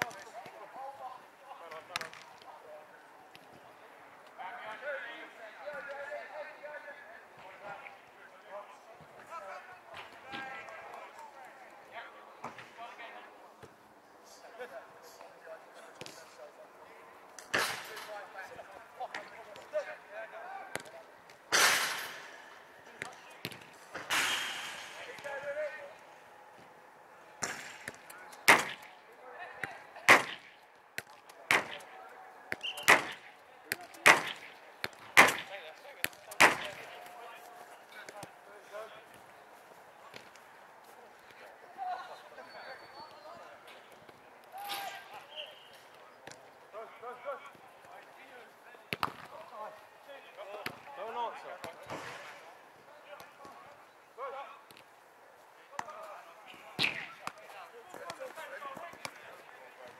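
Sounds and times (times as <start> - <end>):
faint shouts of players: 44.4 - 46.0.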